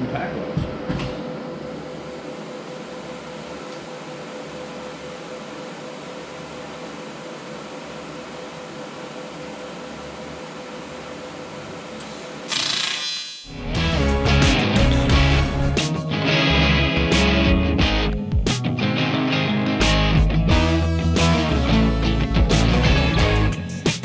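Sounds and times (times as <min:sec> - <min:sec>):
welder cooling fan humming: 0:00.0 - 0:13.9
rock music with guitar: 0:13.5 - 0:24.0.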